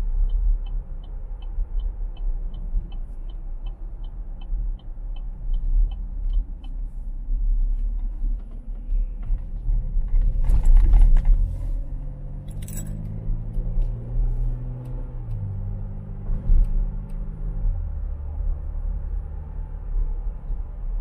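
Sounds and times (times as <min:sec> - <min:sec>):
car engine accelerating: 0:00.0 - 0:21.0.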